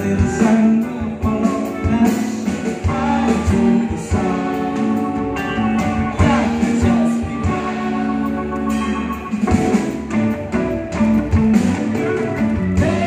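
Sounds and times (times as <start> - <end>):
person singing: 0.0 - 9.5, 12.6 - 13.0
electric keyboard: 0.0 - 13.0
guitar: 0.0 - 13.0.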